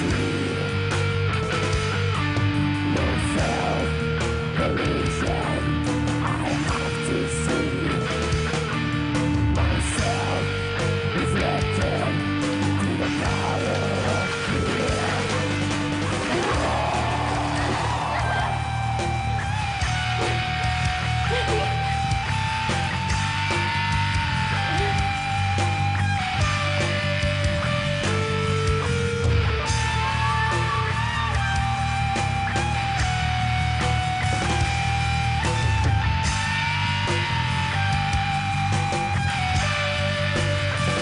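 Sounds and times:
bass guitar: 0.0 - 41.0
distorted electric guitars: 0.0 - 41.0
drums: 0.0 - 41.0
lead guitar long held notes: 0.0 - 41.0.

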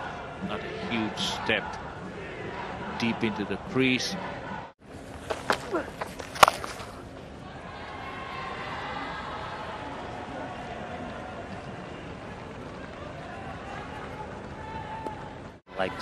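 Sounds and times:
murmur of stadium crowd: 0.0 - 16.0.

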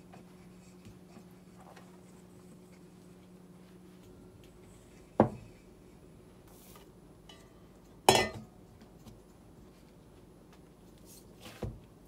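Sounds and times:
metal bowl clanking on stone: 8.1 - 8.5.

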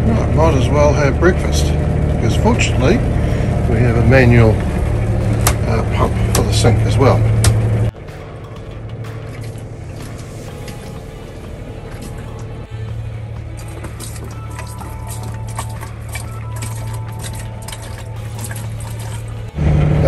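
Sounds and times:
background music: 0.0 - 20.0
water splashing into a sink: 9.1 - 12.7, 13.4 - 19.5
manual sink pump clicking: 13.4 - 19.5.

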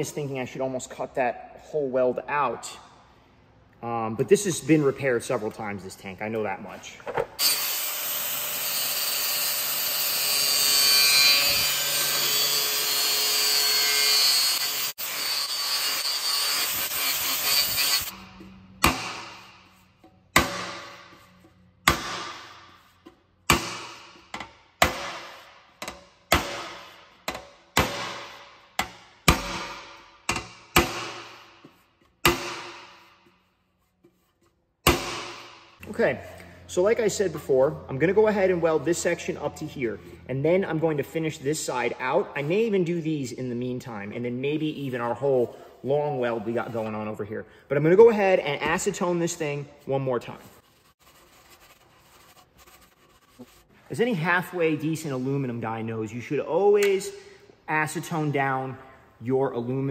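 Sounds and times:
angle grinder cutting metal: 7.4 - 18.2.

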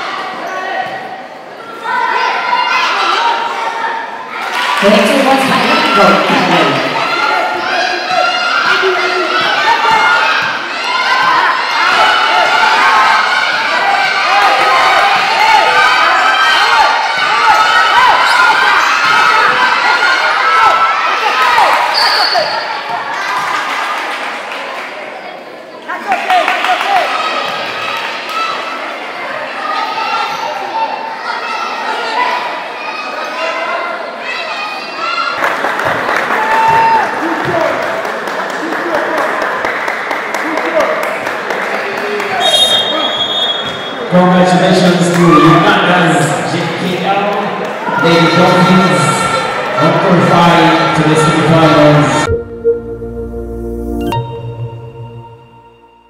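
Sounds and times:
crowd shouting and cheering: 0.0 - 56.0.

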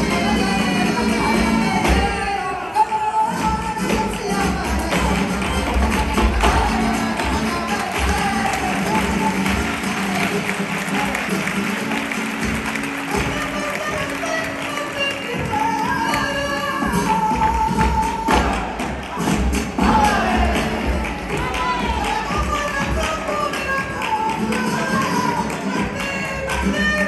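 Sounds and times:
person singing: 0.0 - 12.0, 13.0 - 27.0
rhythmic hand clapping: 3.3 - 27.0.

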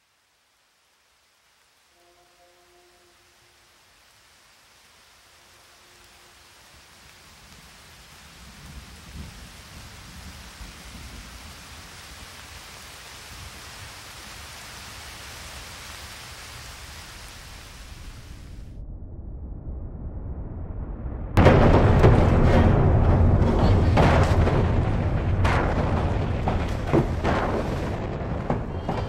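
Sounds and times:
rushing water hiss: 0.0 - 18.6
deep rumble: 18.0 - 29.0.

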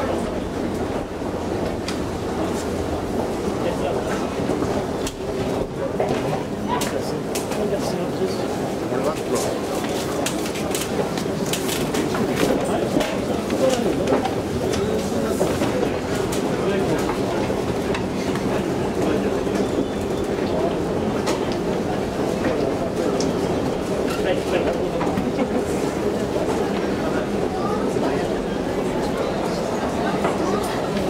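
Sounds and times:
background chatter of voices: 0.0 - 31.0.

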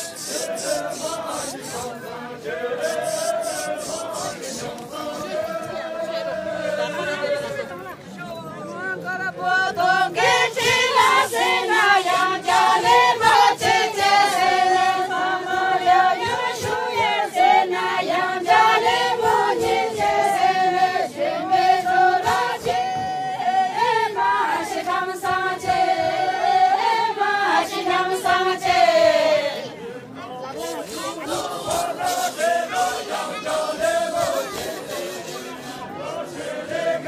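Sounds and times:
women singing in unison: 0.0 - 7.6, 9.2 - 29.8, 30.9 - 37.0.

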